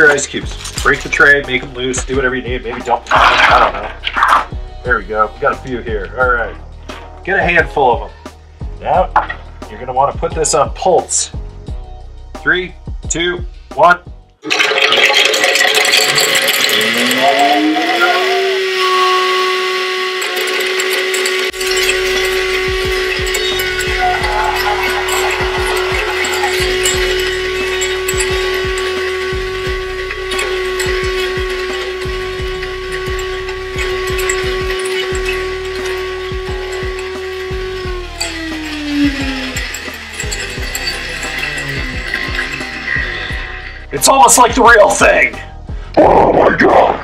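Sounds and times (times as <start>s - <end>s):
ice cubes being crushed: 3.1s - 4.5s, 14.4s - 17.5s
blender motor running: 14.5s - 43.9s.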